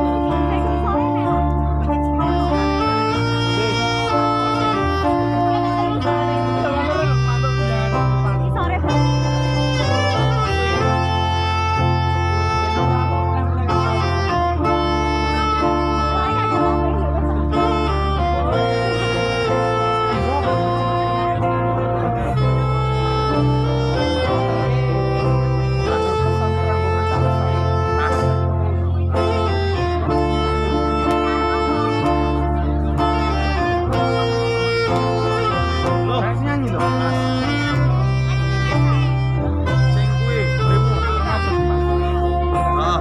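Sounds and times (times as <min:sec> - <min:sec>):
acoustic guitars: 0:00.0 - 0:43.0
bass line: 0:00.0 - 0:43.0
saxophone melody: 0:00.0 - 0:43.0.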